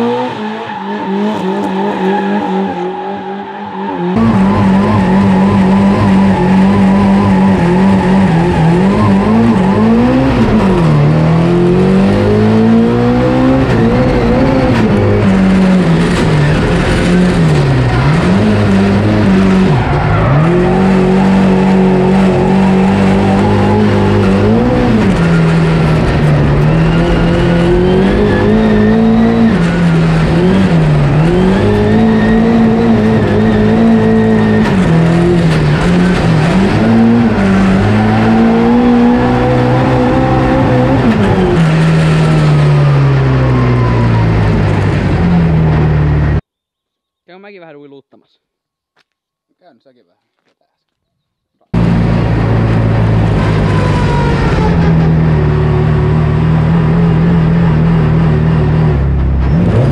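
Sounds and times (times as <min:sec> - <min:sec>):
car engine revving hard: 0:00.0 - 0:02.9, 0:04.1 - 0:46.4, 0:51.7 - 0:59.9.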